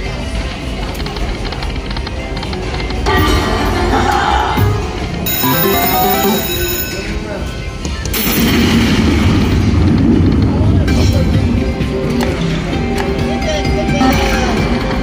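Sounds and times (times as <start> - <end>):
casino background noise: 0.0 - 3.1, 5.3 - 8.3
slot machine chimes and music: 5.2 - 7.4
bright electronic tones: 5.3 - 7.1.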